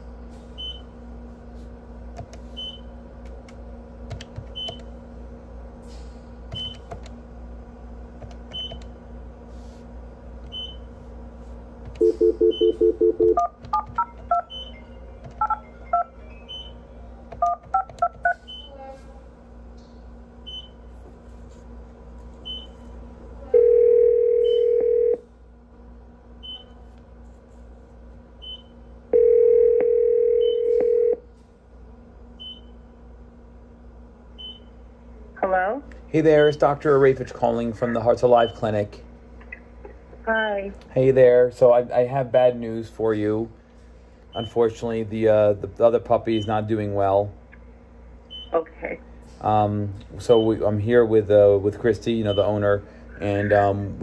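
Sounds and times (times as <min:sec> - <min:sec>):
electrical hum: 0:00.0 - 0:54.0
telephone ringback tone: 0:12.0 - 0:13.4, 0:23.6 - 0:25.2, 0:29.1 - 0:31.2
touch-tone keypad digits: 0:12.0 - 0:16.8.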